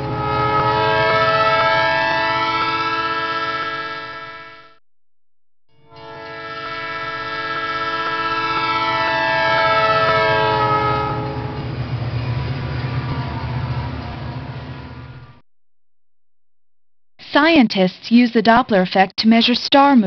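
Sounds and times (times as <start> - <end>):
train rumble: 0.0 - 4.2, 5.9 - 15.4
train whistle: 0.0 - 4.8, 5.8 - 12.6.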